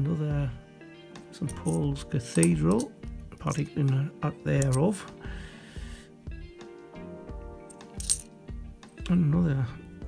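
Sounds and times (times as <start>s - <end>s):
background music with steady beat: 0.0s - 10.0s
coin clinking: 1.5s - 2.9s, 4.6s - 4.8s, 7.8s - 8.3s.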